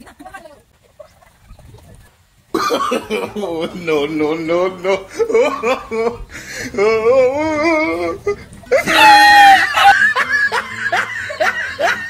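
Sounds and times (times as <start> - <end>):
person chuckling: 2.6 - 12.0.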